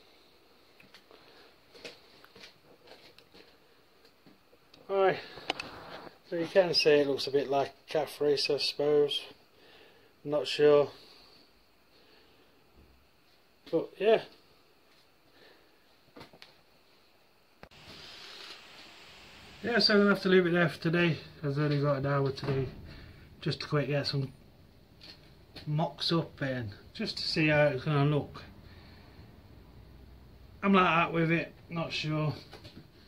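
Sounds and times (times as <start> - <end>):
faint steady hiss: 0.0 - 33.0.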